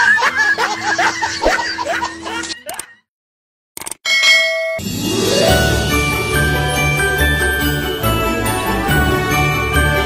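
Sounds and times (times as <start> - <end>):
bright bell ding: 4.1 - 5.7
jingle-bell christmas music: 4.4 - 10.0.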